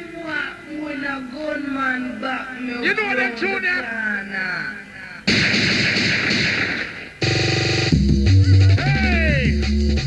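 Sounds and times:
crackling noise burst: 5.2s - 8.8s.

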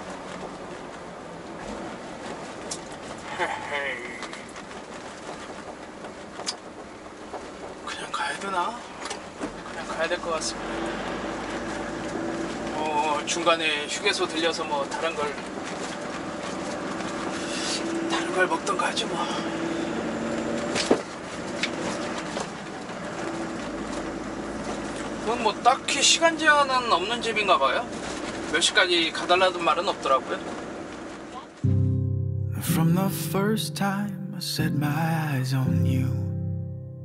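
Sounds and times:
truck engine and road noise: 0.0s - 32.4s.

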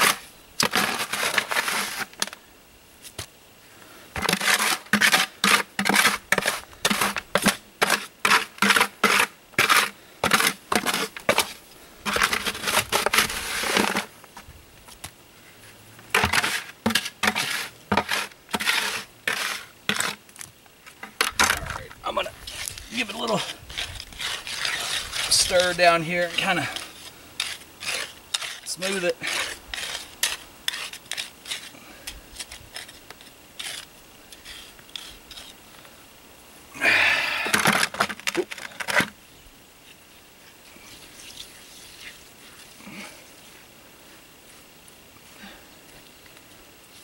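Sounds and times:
concrete scraped from plastic bucket: 0.0s - 2.4s, 4.2s - 14.2s, 16.1s - 20.2s, 21.0s - 35.6s.

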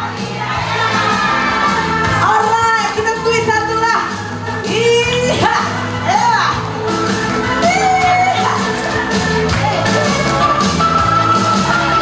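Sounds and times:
amplified backing music: 0.0s - 12.0s.

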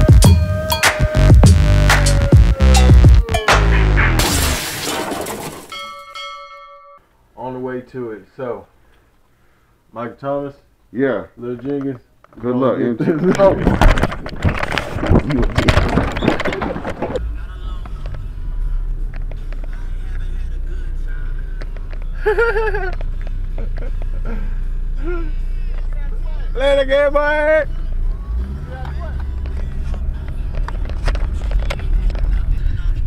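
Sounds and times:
electronic music: 0.0s - 4.5s
bell-like chime: 5.7s - 7.0s
car engine running: 17.0s - 33.0s.

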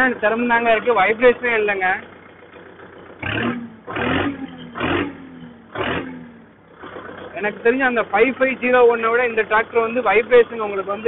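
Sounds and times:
tractor diesel engine revving: 0.0s - 11.0s.

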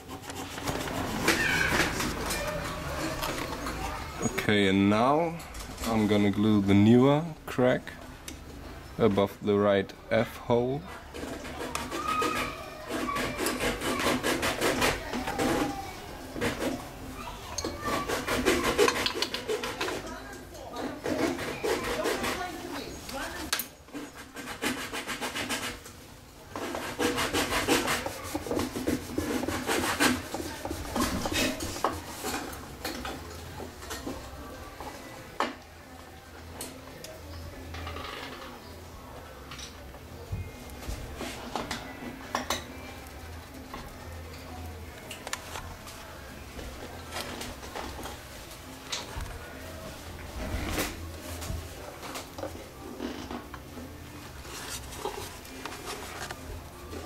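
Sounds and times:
glue brush scratching on wood: 0.0s - 3.7s, 10.8s - 15.8s, 16.4s - 16.8s, 17.6s - 20.2s, 20.8s - 25.9s, 26.6s - 32.6s, 54.4s - 57.0s.

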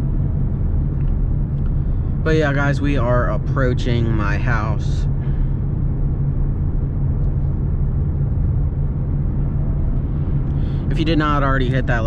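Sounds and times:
car cabin engine and road drone: 0.0s - 12.0s.

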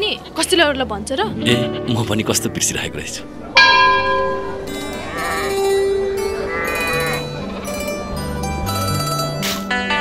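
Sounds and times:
background music: 0.0s - 10.0s
goats and sheep bleating: 4.8s - 7.7s.

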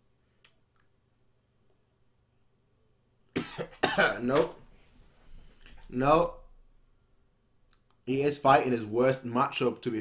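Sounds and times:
man speaking: 3.8s - 4.7s, 5.8s - 6.5s, 8.0s - 10.0s.

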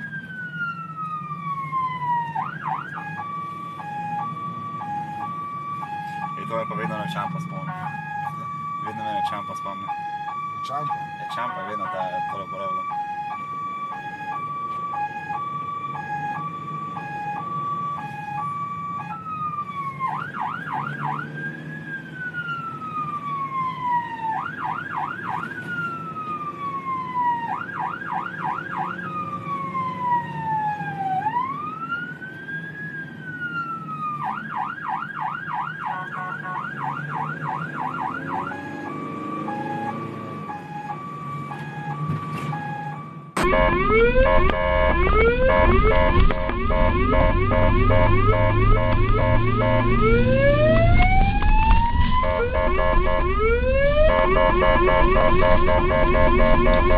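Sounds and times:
emergency vehicle siren: 0.0s - 56.9s
engine and road hum: 0.0s - 56.9s.

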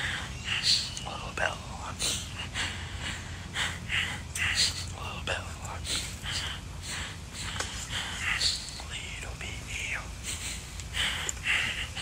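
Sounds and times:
person whispering: 0.0s - 12.0s.

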